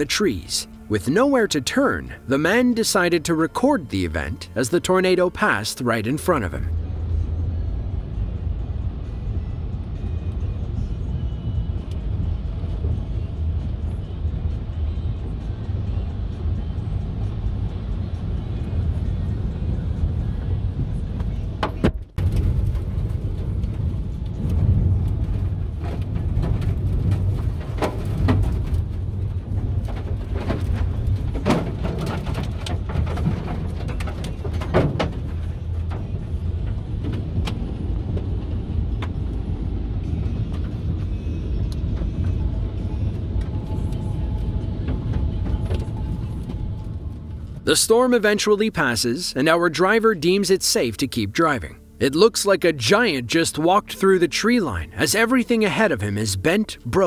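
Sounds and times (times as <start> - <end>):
wind roaring around a car: 6.7 - 47.7
debris knocking on a car: 24.4 - 37.3.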